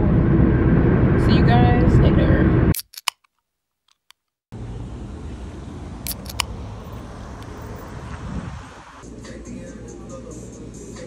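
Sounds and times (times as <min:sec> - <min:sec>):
sharp clicks: 0:02.7 - 0:04.3, 0:06.1 - 0:06.5
outdoor rumble and hiss: 0:04.5 - 0:11.0.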